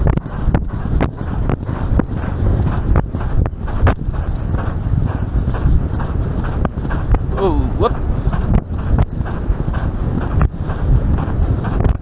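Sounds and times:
horse hoofbeats galloping on turf: 0.0s - 12.0s
low rumble of wind: 0.0s - 12.0s
person calling out: 7.3s - 7.9s.

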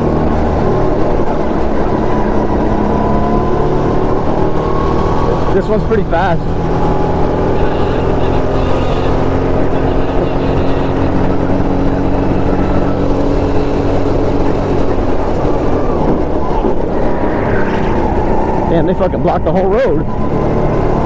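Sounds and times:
go-kart engine running: 0.0s - 21.0s.

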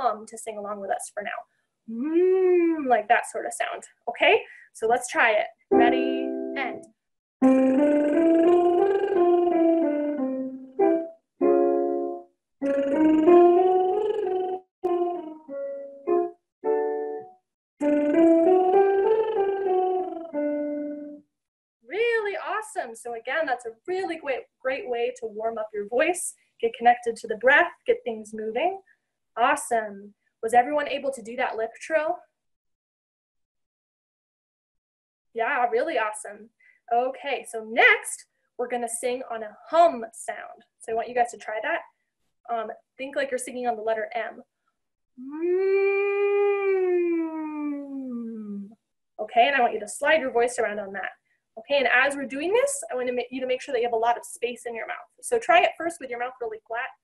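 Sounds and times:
woman humming: 1.9s - 2.9s, 8.7s - 9.6s, 12.6s - 15.3s, 45.2s - 48.8s
piano accompaniment: 5.7s - 6.8s, 7.4s - 21.2s.

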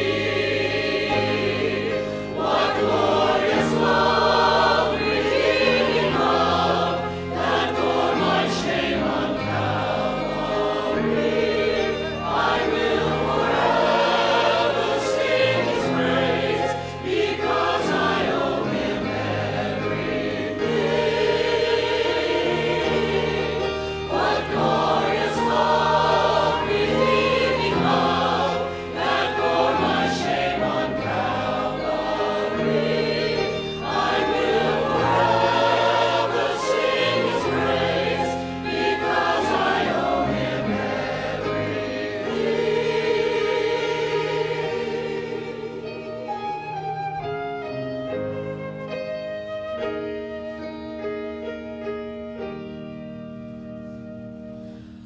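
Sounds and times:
church choir singing a hymn: 0.0s - 49.0s
flute: 23.0s - 41.2s, 45.5s - 54.8s.

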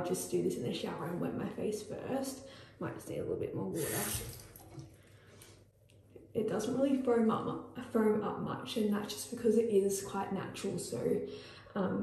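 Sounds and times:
water running at a sink: 3.7s - 5.0s.

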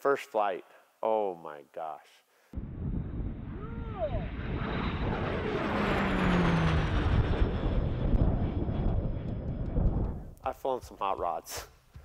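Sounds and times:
propeller plane flying past: 2.6s - 10.4s
high turbine whine: 2.6s - 11.2s.

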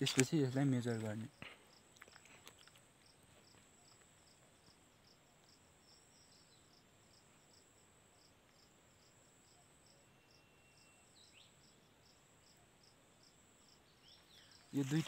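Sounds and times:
insects chirping: 0.0s - 15.0s.

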